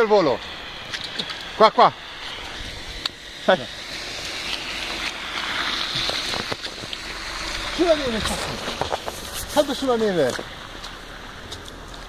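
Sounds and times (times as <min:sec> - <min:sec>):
steady rushing noise: 0:00.0 - 0:12.0
footsteps on snow: 0:04.5 - 0:12.0.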